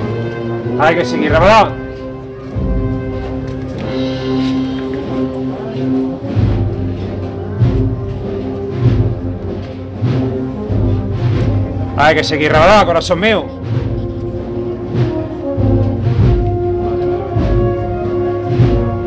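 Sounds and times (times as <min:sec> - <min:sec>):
band playing a march: 0:00.0 - 0:19.0
deep drum beating: 0:06.2 - 0:19.0.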